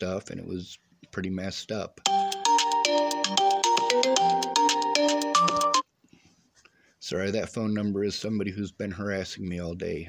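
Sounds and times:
mobile phone ringtone: 2.1s - 5.8s.

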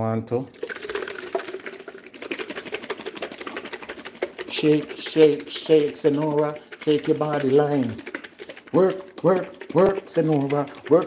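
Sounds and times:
liquid sloshing in shaken jar: 0.5s - 11.0s.

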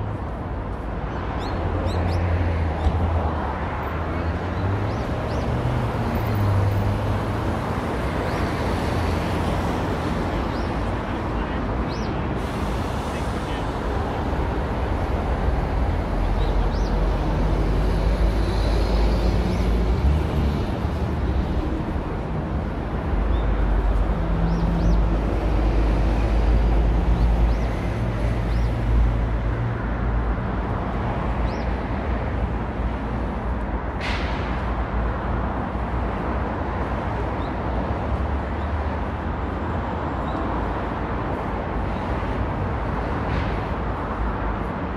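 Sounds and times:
traffic rumble: 0.0s - 44.9s.

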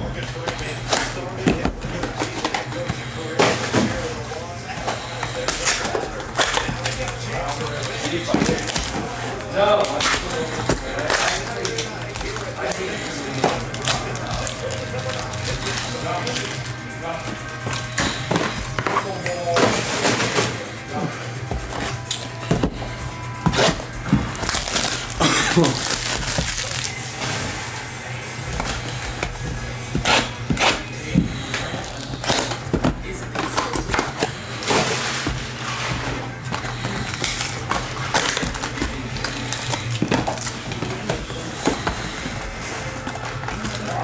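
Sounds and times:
background music: 0.0s - 44.0s
foil card packs rustling: 0.0s - 44.0s
cardboard boxes being torn open: 23.4s - 27.6s, 30.0s - 44.0s.

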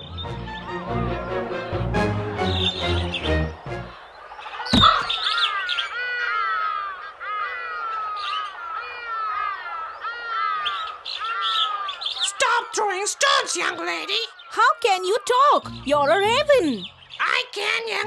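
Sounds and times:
cartoon background music: 0.0s - 4.0s, 15.6s - 18.0s
high bird chirps: 2.4s - 6.9s, 7.6s - 18.0s.

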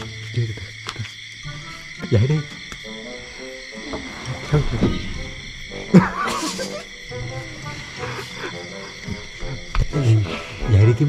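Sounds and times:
eerie background music: 0.0s - 11.0s
low voices: 1.9s - 11.0s.

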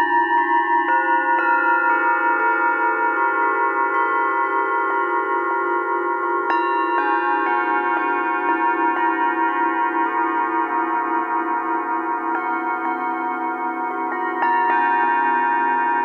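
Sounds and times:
singing bowls struck with mallet: 0.0s - 16.0s.

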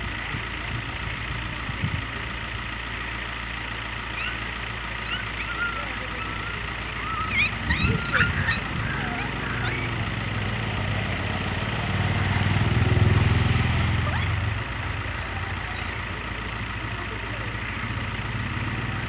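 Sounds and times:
vehicle engine humming: 0.0s - 19.0s.

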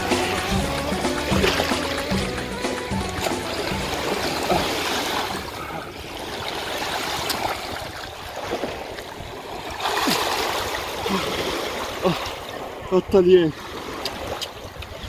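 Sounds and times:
shallow seawater washing and splashing: 0.0s - 15.0s
surge of water: 0.0s - 15.0s.

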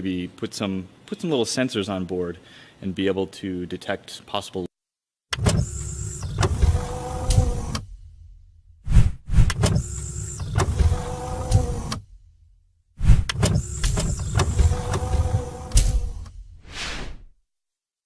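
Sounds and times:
whirring motor-like slide: 5.4s - 7.9s, 8.9s - 12.1s, 13.0s - 17.2s
mechanical clunk: 5.4s - 8.4s, 9.5s - 12.2s, 13.3s - 16.5s.

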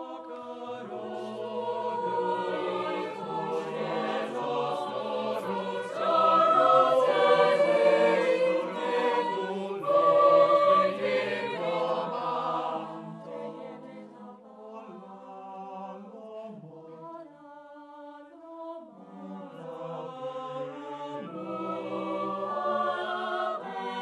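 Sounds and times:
mixed choir singing: 0.0s - 24.0s.

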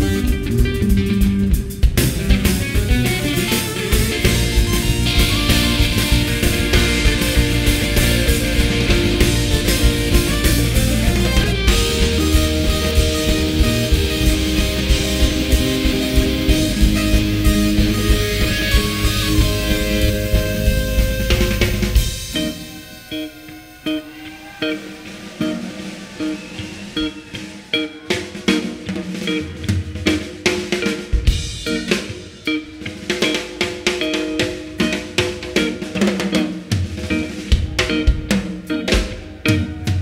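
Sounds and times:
held keyboard or guitar notes: 0.0s - 40.0s
rock band playing: 0.0s - 40.0s.

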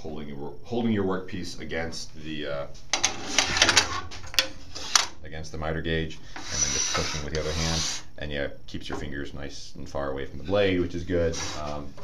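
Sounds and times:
metal clatter on saw table: 3.0s - 5.1s.

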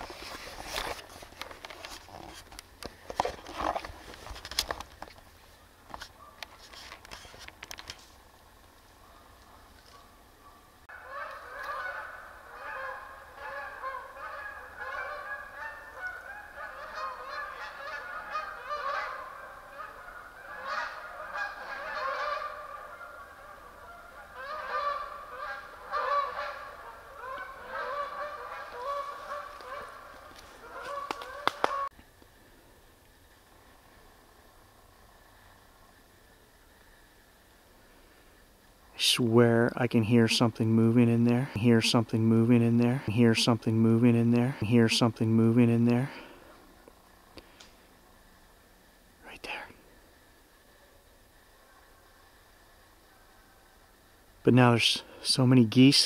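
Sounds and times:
geese honking: 9.0s - 31.9s.

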